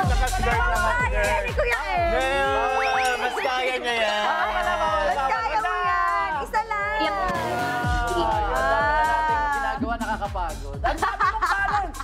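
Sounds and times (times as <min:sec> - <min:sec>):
music with deep bass kicks: 0:00.0 - 0:02.6, 0:04.6 - 0:12.0.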